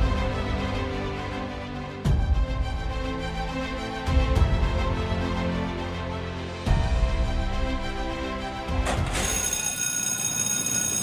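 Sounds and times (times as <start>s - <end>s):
starting-gate bell ringing: 8.9s - 11.0s.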